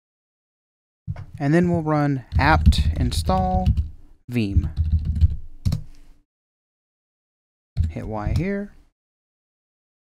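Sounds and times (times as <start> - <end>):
computer keyboard typing: 2.3 - 5.9.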